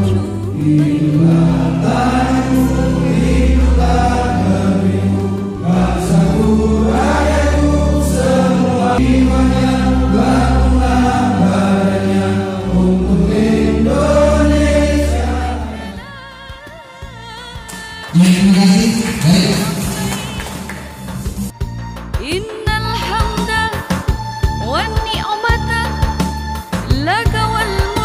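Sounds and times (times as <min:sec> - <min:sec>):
choir singing with instrumental backing: 0:00.0 - 0:21.8.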